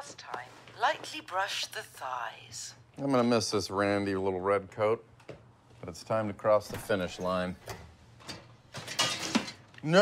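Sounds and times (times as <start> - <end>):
oven rack scraping and rattling: 6.8 - 9.6.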